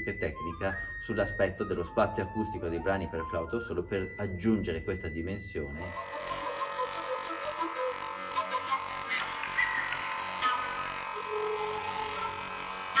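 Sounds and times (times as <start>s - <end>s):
flute and electronic tones: 0.0s - 13.0s.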